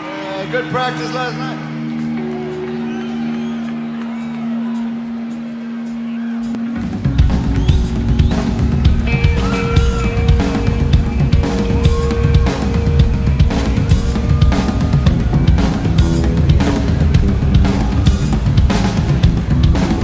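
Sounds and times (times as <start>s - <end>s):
rock band playing live: 0.0s - 20.0s
drum kit heavy beat: 1.8s - 20.0s.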